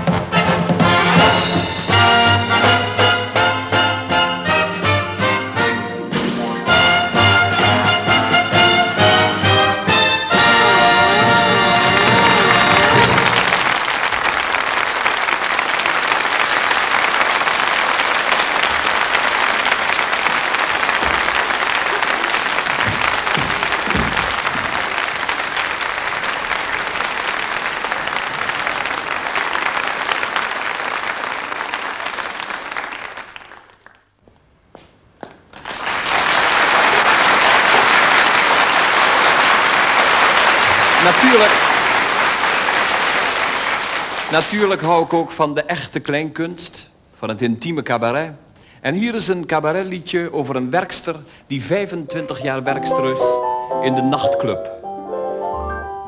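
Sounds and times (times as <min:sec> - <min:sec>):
audience applauding: 0:09.9 - 0:34.1, 0:35.4 - 0:45.1.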